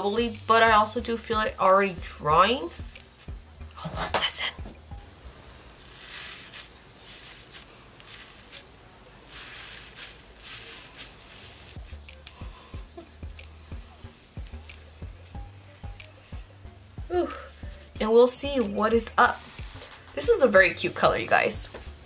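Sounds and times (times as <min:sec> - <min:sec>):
fingertips rubbing foam: 0:05.8 - 0:16.6.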